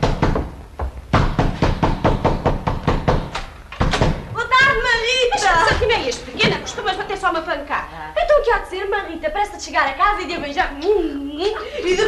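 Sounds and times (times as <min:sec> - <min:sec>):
rapid knocking on door: 0:00.0 - 0:05.0.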